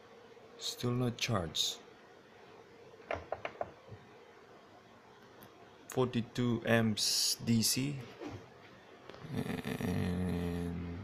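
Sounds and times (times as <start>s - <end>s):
man humming: 9.2s - 11.0s.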